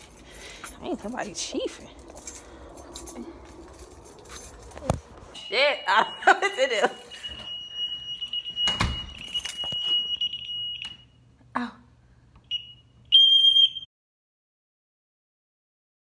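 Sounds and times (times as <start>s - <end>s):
shrill alarm tone: 1.2s - 11.1s
short beeps: 5.4s - 11.1s.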